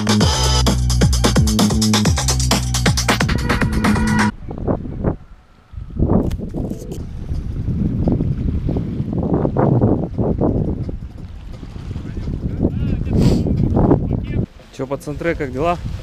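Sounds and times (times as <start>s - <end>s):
electronic dance music: 0.0s - 4.3s
gusty wind on microphone: 3.2s - 16.0s.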